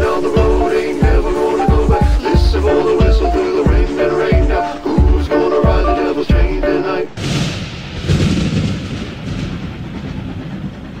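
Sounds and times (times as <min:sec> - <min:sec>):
loud rumbling: 0:00.0 - 0:11.0.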